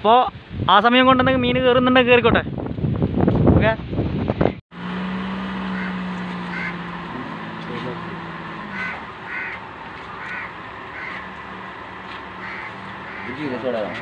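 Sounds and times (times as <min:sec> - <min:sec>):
birds calling: 0:05.2 - 0:14.0.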